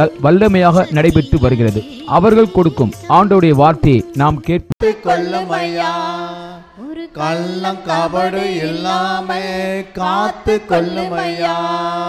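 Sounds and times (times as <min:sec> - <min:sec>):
man singing devotional melody: 0:00.0 - 0:12.0.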